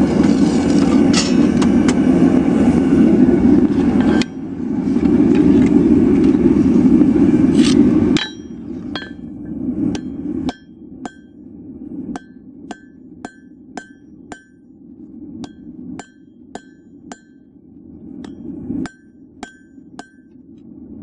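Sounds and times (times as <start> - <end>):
loud steady rushing noise: 0.0 - 21.0
hammer striking steel on anvil: 8.2 - 9.3, 9.9 - 11.4, 12.1 - 14.6, 15.4 - 17.5, 18.2 - 20.4.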